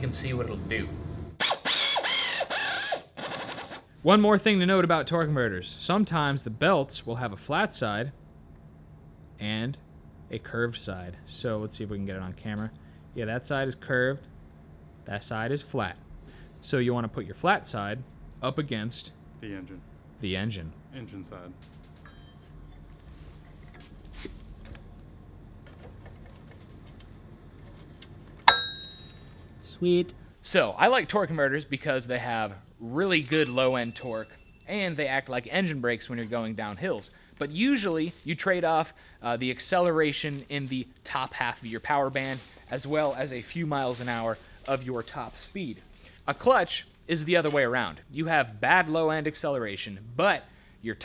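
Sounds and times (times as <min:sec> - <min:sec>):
cordless power ratchet whining: 0:01.4 - 0:03.8
sharp metallic clink: 0:28.5 - 0:29.2, 0:33.2 - 0:34.6.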